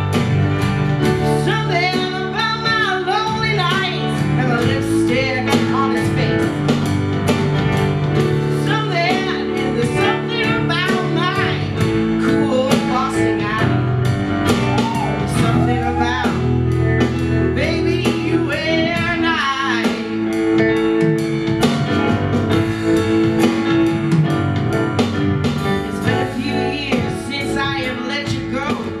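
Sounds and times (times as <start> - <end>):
live rock band playing: 0.0 - 29.0.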